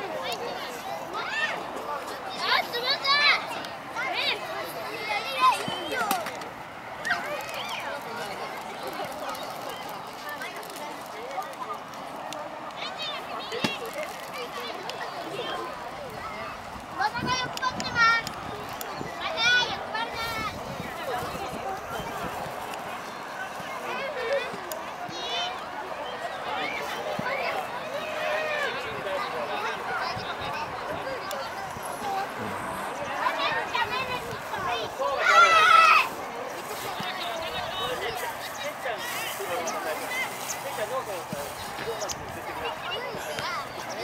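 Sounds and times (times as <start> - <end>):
children calling and shouting: 0.0 - 44.0
running footsteps on turf: 21.0 - 44.0.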